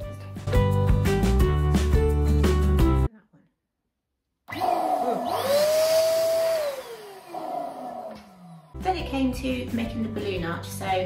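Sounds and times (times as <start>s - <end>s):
electric balloon pump whining: 4.5s - 8.8s.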